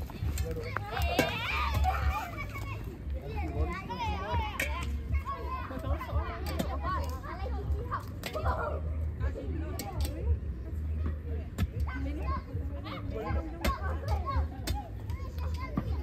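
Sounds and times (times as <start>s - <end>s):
children and adults chattering: 0.0s - 16.0s.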